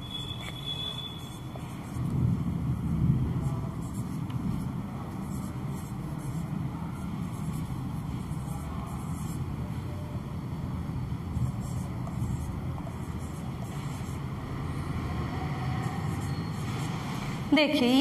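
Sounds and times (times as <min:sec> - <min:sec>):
marker scratching on whiteboard: 0:00.0 - 0:02.2, 0:03.4 - 0:09.5, 0:11.4 - 0:17.4
low background rumble: 0:01.2 - 0:16.2.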